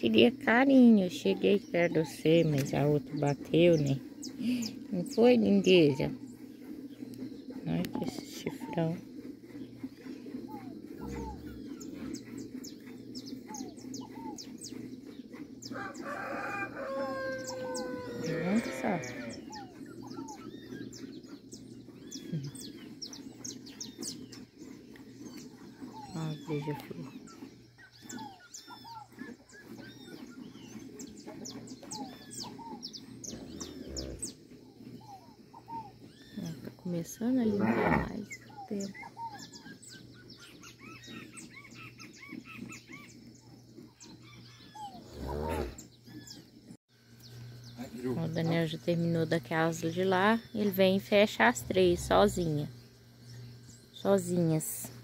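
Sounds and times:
small birds chirping: 0.0s - 55.0s
rooster crowing: 15.7s - 19.2s.

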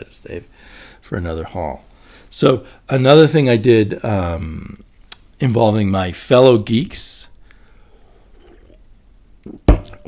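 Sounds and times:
sipping and swallowing beer: 8.0s - 10.0s.

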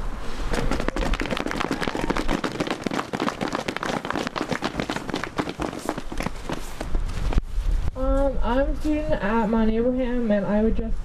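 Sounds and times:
audience applauding: 0.5s - 6.6s.

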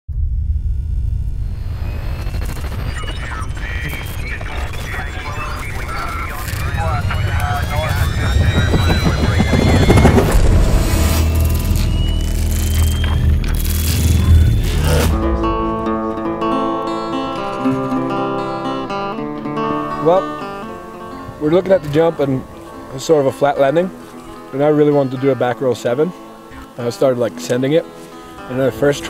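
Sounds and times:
helicopter rotor rumble: 2.2s - 14.8s
music: 2.9s - 29.0s
voices: 3.0s - 11.4s.

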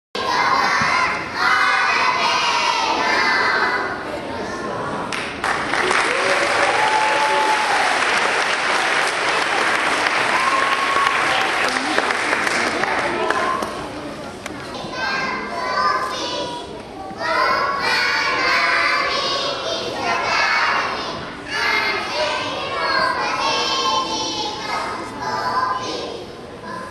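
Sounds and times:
children singing in chorus: 0.2s - 4.0s, 14.8s - 26.9s
applause: 5.1s - 13.8s.

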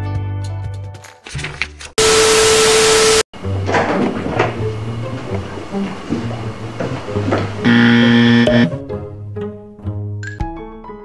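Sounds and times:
background music: 6.6s - 11.0s
static hiss: 7.1s - 8.7s
steady beep tone: 7.6s - 8.7s.

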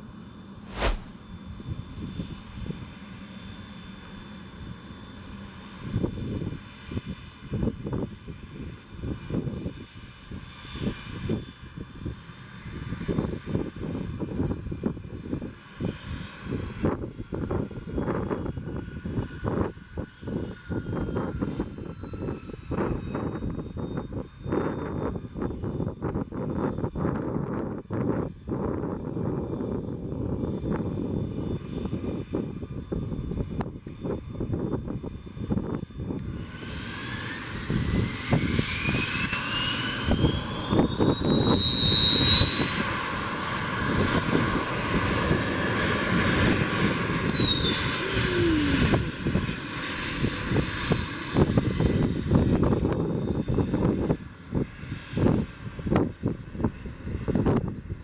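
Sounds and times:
jet engine whine: 0.0s - 58.0s
low rumbles: 0.7s - 1.4s.

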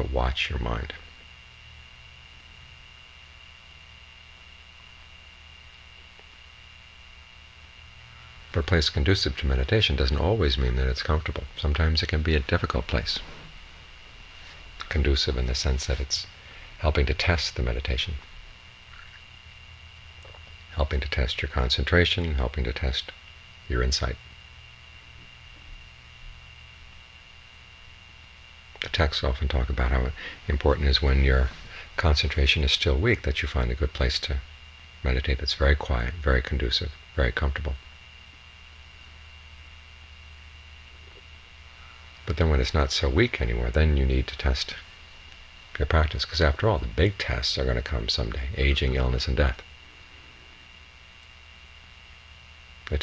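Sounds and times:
faint high whine: 0.0s - 53.0s
low electrical hum: 0.0s - 53.0s.

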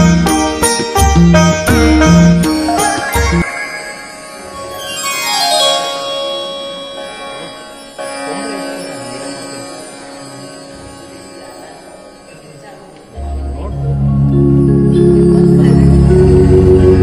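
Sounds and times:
harmonium playing chords: 0.0s - 17.0s.

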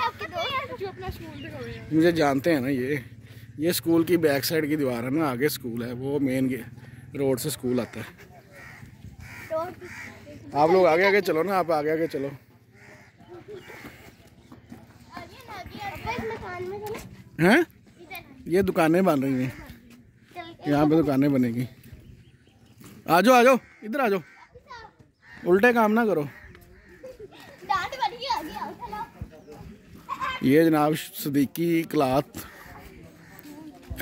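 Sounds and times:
children chattering and calling: 0.0s - 34.0s.

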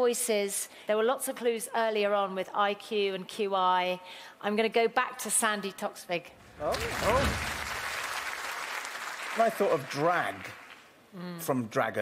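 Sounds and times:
audience applauding: 6.4s - 10.9s.

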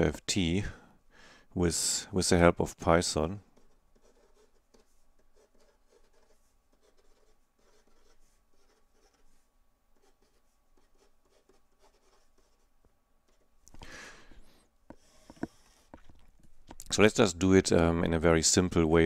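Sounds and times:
marker scratching on paper: 3.6s - 9.4s, 10.0s - 12.7s, 14.9s - 16.2s.

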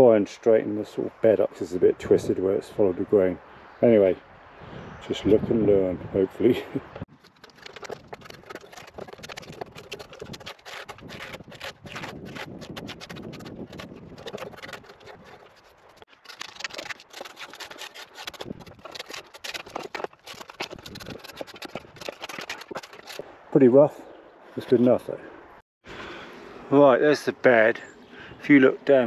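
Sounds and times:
draw knife scraping wood: 7.2s - 23.2s.

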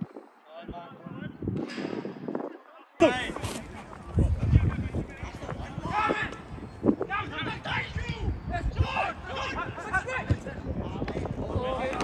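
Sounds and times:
players shouting: 5.0s - 10.5s.

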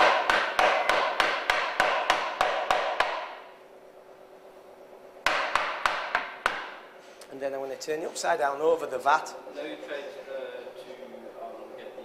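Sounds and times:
chocolate mould tapping on bench: 0.0s - 3.4s, 5.2s - 6.8s.

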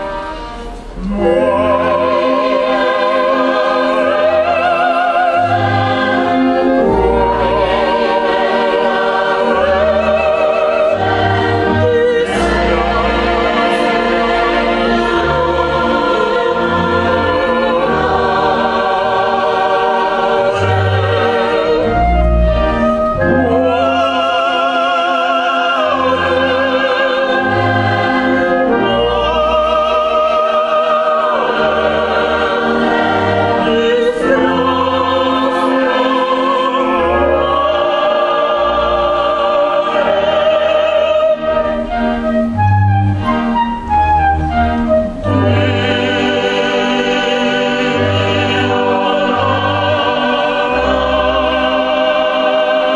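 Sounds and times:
chamber orchestra: 0.0s - 52.9s
choir singing sacred piece: 0.0s - 52.9s.

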